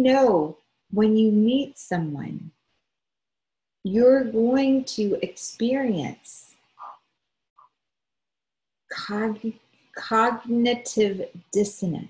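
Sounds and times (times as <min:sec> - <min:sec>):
woman speaking: 0:00.0 - 0:02.5, 0:03.9 - 0:07.0, 0:08.9 - 0:12.0.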